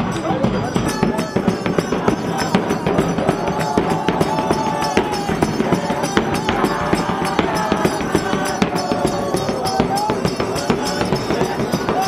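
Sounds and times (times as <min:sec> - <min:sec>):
marching bass drum and cymbals: 0:00.0 - 0:12.0.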